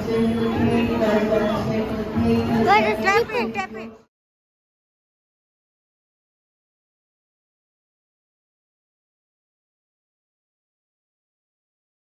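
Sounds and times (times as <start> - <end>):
crowd chatter: 0.0 - 4.1.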